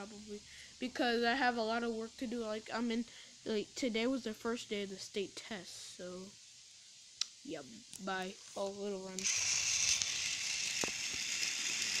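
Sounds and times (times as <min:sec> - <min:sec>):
toy train motor whirring: 0:07.9 - 0:12.0.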